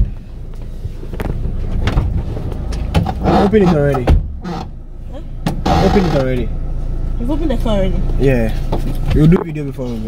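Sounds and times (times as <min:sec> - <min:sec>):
low rumble inside car: 0:00.0 - 0:10.0
car door clicks and knocks: 0:03.9 - 0:04.8.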